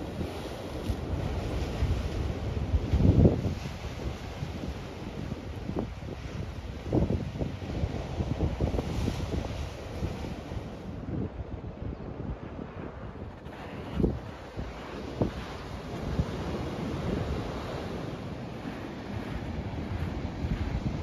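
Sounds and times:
ocean surf breaking: 0:00.0 - 0:11.4, 0:12.4 - 0:21.0
wind buffeting microphone: 0:00.0 - 0:21.0.

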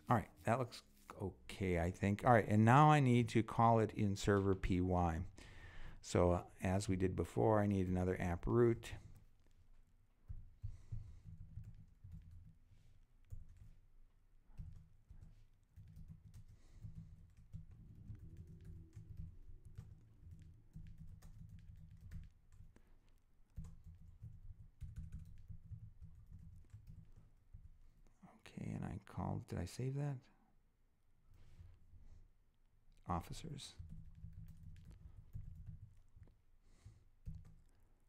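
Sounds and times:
faint keyboard typing: 0:00.4 - 0:28.4, 0:31.2 - 0:32.3, 0:32.9 - 0:38.0.

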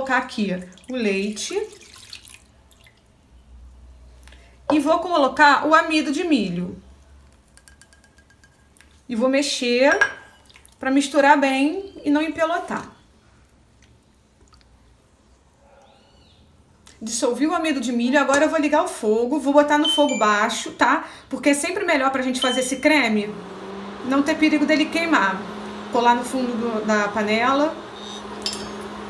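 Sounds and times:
milk dripping into a saucepan: 0:00.6 - 0:03.7, 0:10.0 - 0:10.8.

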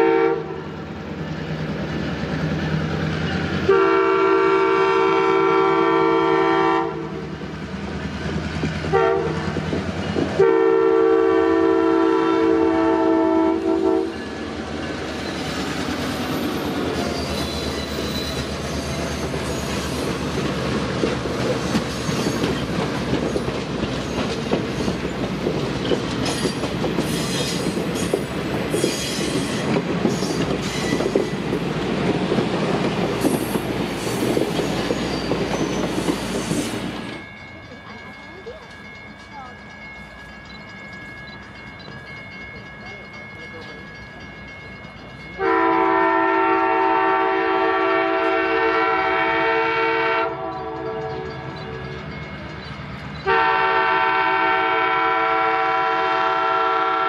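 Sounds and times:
locomotive air horn blasts: 0:00.0 - 0:00.7, 0:03.7 - 0:07.2, 0:08.9 - 0:09.5, 0:10.4 - 0:14.2, 0:45.4 - 0:51.3, 0:53.2 - 0:57.0
train wheels clacking over rail joints: 0:07.3 - 0:10.6, 0:14.1 - 0:45.4.

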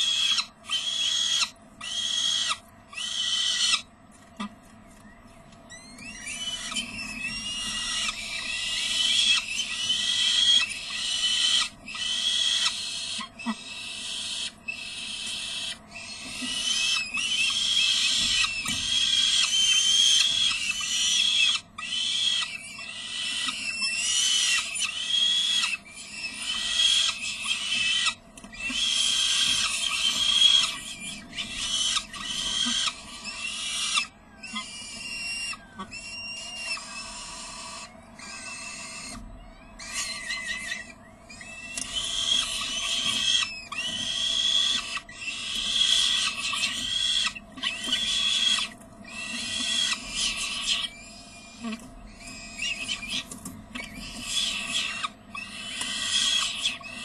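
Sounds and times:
falcon chicks begging calls: 0:00.0 - 0:04.6, 0:05.7 - 0:57.0.

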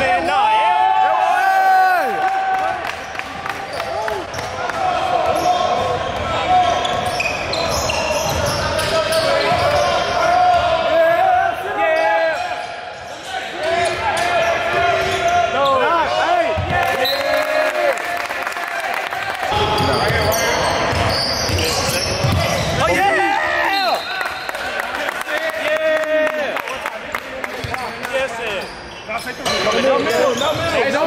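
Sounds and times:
voices echoing in hall: 0:00.0 - 0:31.0
sneakers squeaking: 0:05.2 - 0:10.8, 0:19.5 - 0:24.6, 0:27.6 - 0:31.0.

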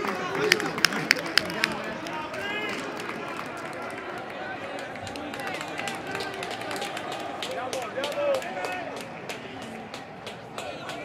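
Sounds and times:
players shouting and calling: 0:00.0 - 0:11.0.

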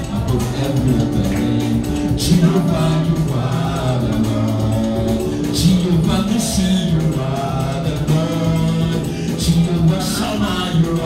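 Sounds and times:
instrumental backing music: 0:00.0 - 0:11.0
man singing into microphone: 0:00.0 - 0:11.0.

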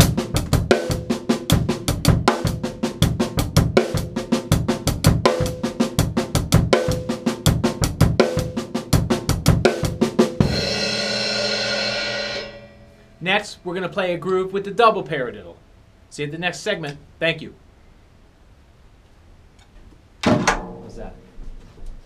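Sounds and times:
drum kit groove: 0:00.0 - 0:15.4
cymbal crash ringing: 0:10.4 - 0:13.8.

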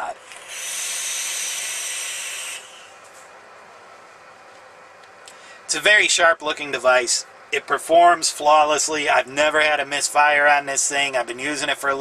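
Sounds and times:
vape coil sizzling hiss: 0:00.3 - 0:03.0.

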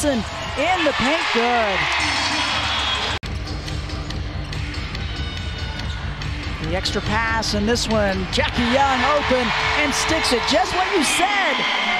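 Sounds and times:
arena music: 0:00.0 - 0:11.9.

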